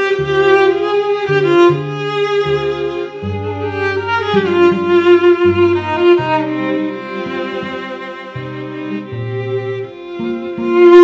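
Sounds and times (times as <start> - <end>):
cellos playing slow duet: 0.0 - 11.0.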